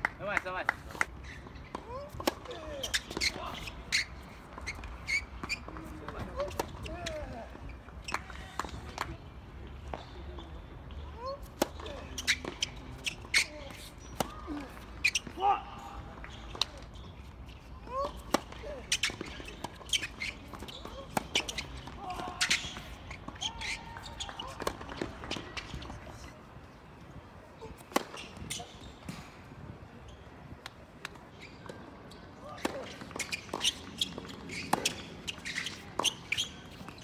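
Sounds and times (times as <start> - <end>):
tennis ball bouncing on court: 1.7 - 3.6, 18.0 - 26.2, 27.8 - 29.2.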